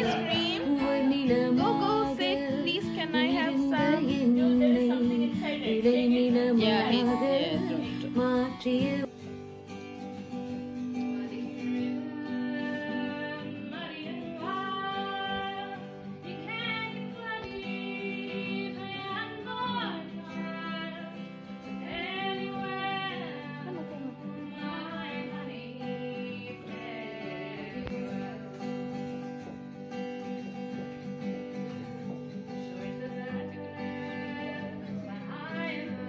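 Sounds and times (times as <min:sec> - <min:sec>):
person singing long notes: 0:00.0 - 0:09.1
acoustic guitar: 0:00.0 - 0:36.0.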